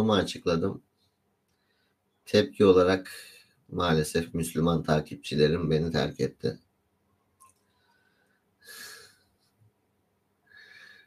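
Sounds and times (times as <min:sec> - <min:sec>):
man breathing softly: 0:01.5 - 0:02.2, 0:07.6 - 0:09.6, 0:10.4 - 0:11.0.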